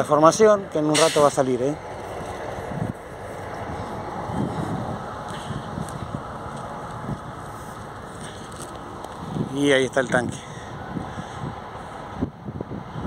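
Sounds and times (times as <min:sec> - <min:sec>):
wind buffeting microphone: 0:01.7 - 0:13.0.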